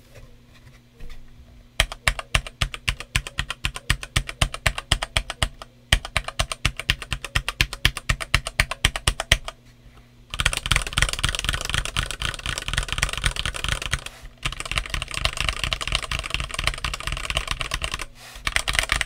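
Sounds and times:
mechanical keyboard typing: 0:01.8 - 0:09.6, 0:10.3 - 0:19.0.

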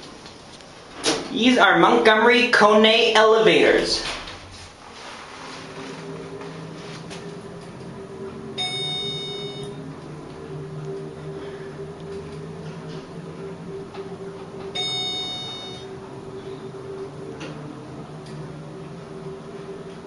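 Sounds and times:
elevator humming: 0:00.0 - 0:20.0
electronic floor chime: 0:08.5 - 0:11.2, 0:14.2 - 0:16.2.

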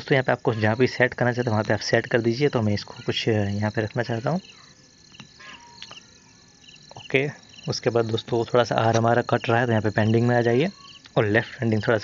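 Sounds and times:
faint high-pitched chirping: 0:00.0 - 0:12.0.

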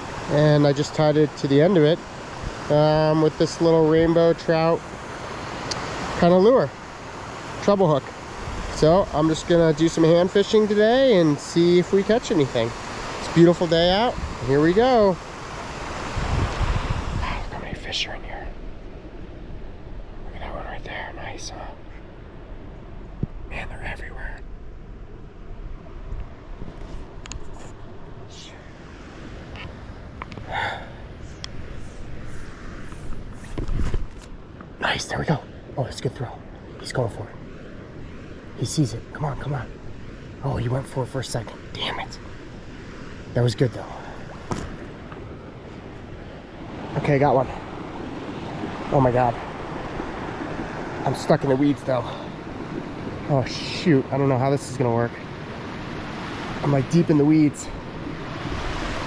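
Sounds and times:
low outdoor rush: 0:00.0 - 0:59.0
person whispering: 0:17.2 - 0:18.6, 0:20.3 - 0:22.0, 0:23.5 - 0:24.5, 0:28.3 - 0:28.8, 0:41.7 - 0:42.2.

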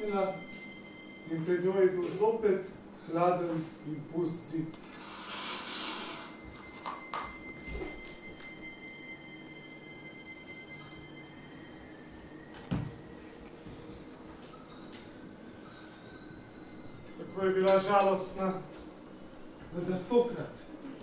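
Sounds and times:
soft pulsing high tones: 0:00.0 - 0:05.1, 0:06.0 - 0:21.0
held high tone: 0:00.0 - 0:18.8.

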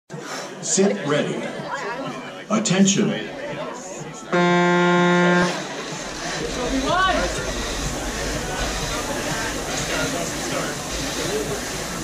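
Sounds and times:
start horn tone: 0:04.3 - 0:09.7.

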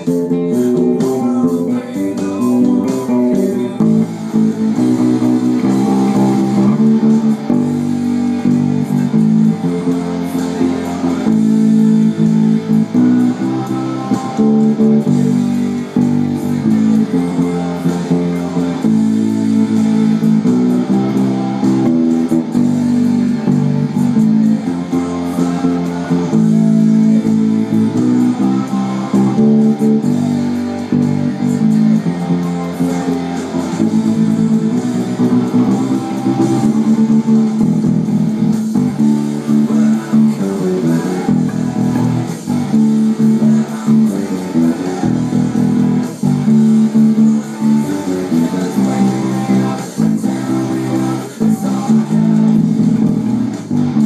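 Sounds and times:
electric bass guitar: 0:00.0 - 0:54.0
rock band with drums: 0:00.0 - 0:54.0.

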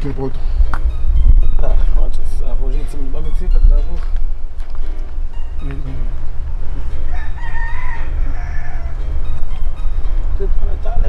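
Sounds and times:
steady low rumble: 0:00.0 - 0:07.4, 0:08.0 - 0:11.0
rooster crowing: 0:06.9 - 0:09.2.

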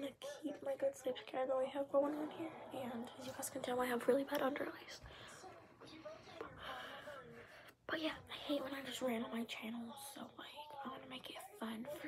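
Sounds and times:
girl whispering: 0:02.8 - 0:05.4.

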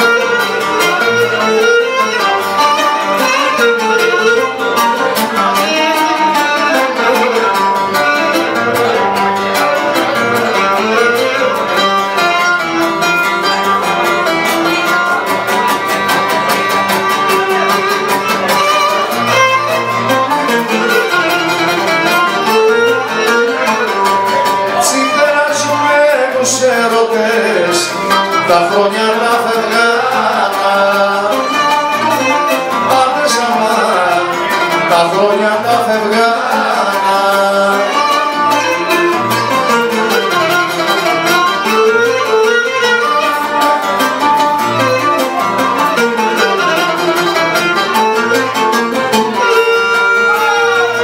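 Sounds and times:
bowed lyra melody: 0:00.0 - 0:51.0
strummed lute: 0:00.0 - 0:51.0.

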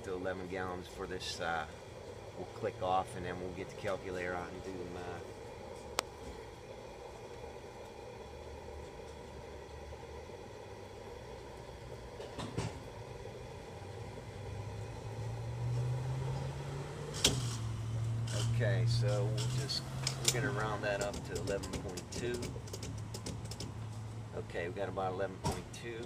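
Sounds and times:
fuel pump humming: 0:00.0 - 0:26.0.

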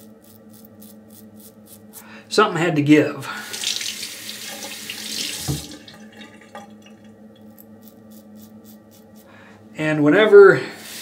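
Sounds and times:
water running from sink tap: 0:03.4 - 0:07.0.

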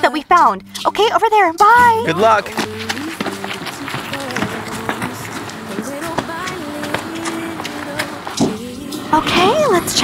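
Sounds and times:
footsteps running on hard path: 0:02.1 - 0:08.6.

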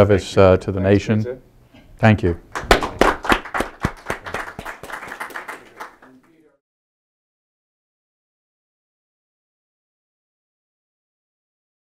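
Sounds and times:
hands clapping: 0:02.5 - 0:06.4.

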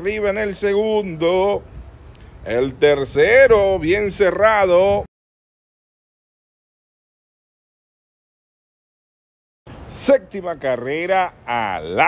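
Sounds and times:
man commentating: 0:09.9 - 0:12.0.

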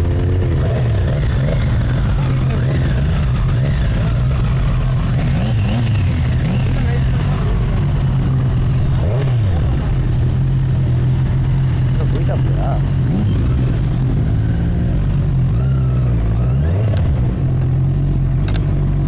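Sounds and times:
motorcycle engine running: 0:00.0 - 0:19.0
voices in background: 0:06.4 - 0:09.8.

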